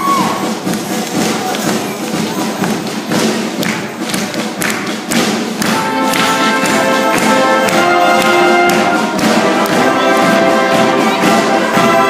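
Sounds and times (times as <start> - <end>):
drum strikes: 0.0 - 12.0
sustained brass chords: 5.6 - 12.0.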